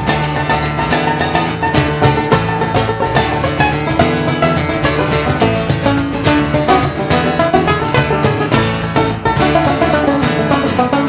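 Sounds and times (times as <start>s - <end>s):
acoustic guitar: 0.0s - 11.0s
banjo picking: 0.0s - 11.0s
electric bass: 0.0s - 11.0s.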